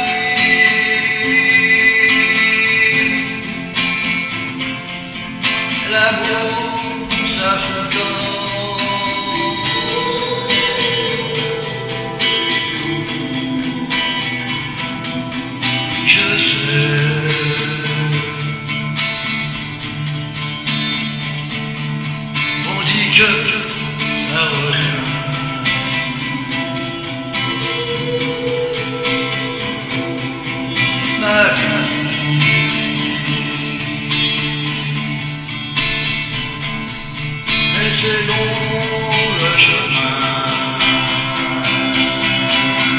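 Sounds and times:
man singing: 0.0s - 4.3s, 5.5s - 19.4s, 22.5s - 35.2s, 37.5s - 42.9s
acoustic guitar strummed: 0.0s - 42.9s.

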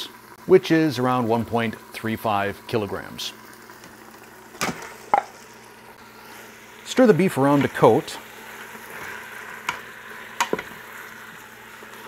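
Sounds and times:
meat sizzling in a pot: 0.0s - 12.0s.

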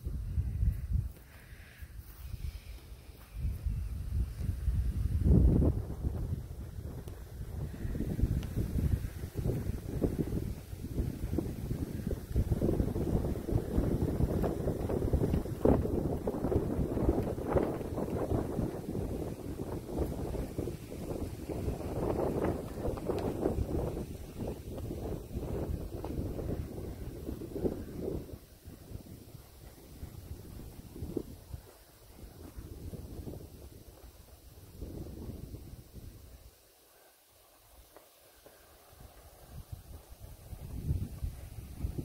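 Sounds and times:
wind buffeting microphone: 0.0s - 36.5s, 38.4s - 42.0s.

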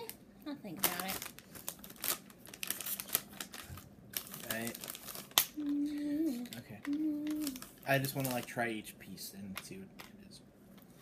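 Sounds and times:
person humming: 5.6s - 7.6s.

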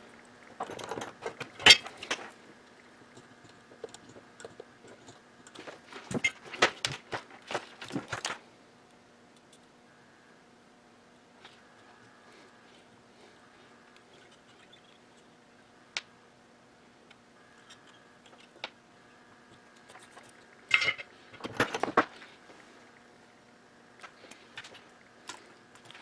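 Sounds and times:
faint steady hum: 0.0s - 26.0s.

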